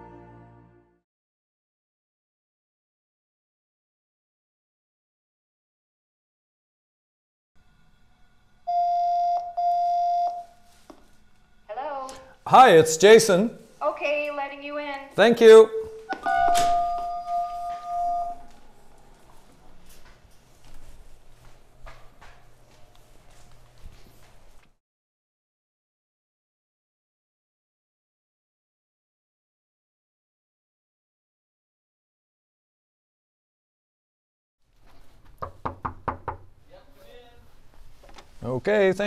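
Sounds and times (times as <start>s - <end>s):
intercom electronic chime: 8.7s - 10.6s, 15.6s - 18.6s
knocking on wooden door: 35.4s - 36.5s.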